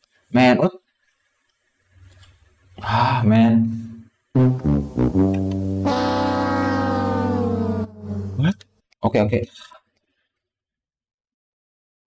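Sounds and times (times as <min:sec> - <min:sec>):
deep low rumbling drone: 0:04.4 - 0:08.5.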